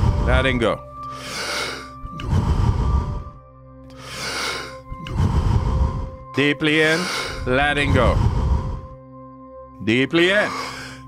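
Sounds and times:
background music: 0:00.0 - 0:11.0
person breathing forcefully: 0:01.1 - 0:06.3, 0:06.9 - 0:09.0.

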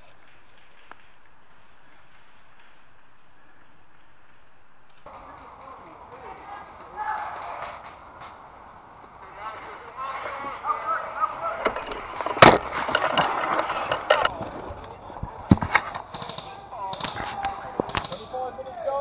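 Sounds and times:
indistinct voices: 0:05.1 - 0:19.0.

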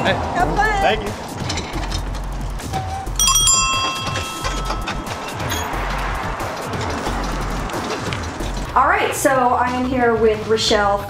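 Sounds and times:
bicycle bell ringing: 0:03.1 - 0:06.9.

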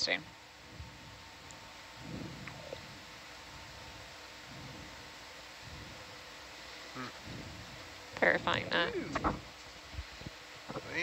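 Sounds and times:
faint steady hum: 0:00.0 - 0:11.0
low irregular rumble: 0:00.0 - 0:11.0
steady hiss: 0:00.0 - 0:11.0.

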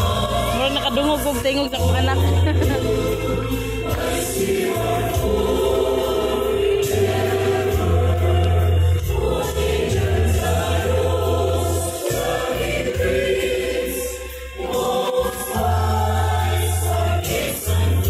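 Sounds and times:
choir singing: 0:00.0 - 0:18.0
steady bass line: 0:00.0 - 0:18.0.

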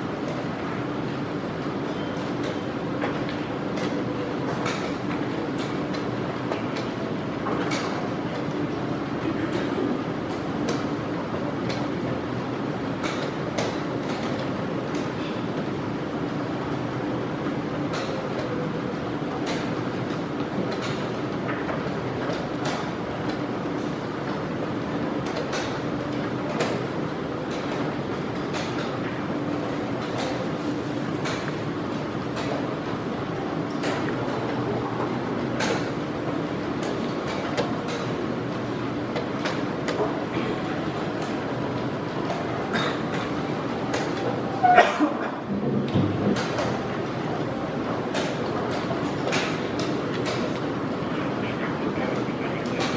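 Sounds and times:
crowded hall background noise: 0:00.0 - 0:52.9.

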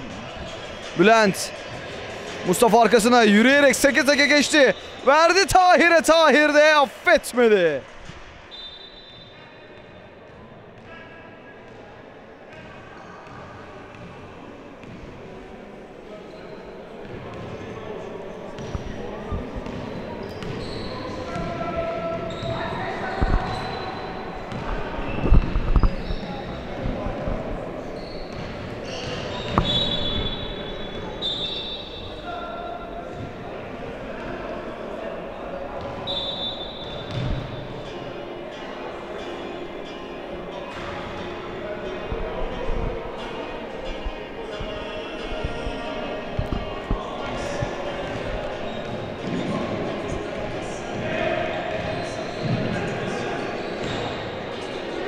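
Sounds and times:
players' voices: 0:00.0 - 0:08.0, 0:10.7 - 0:55.0.

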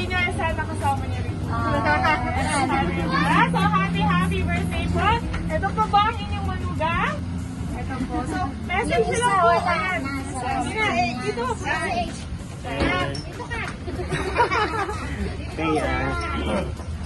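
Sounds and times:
women talking and exclaiming: 0:00.0 - 0:16.9
steady low hum: 0:00.0 - 0:17.0.

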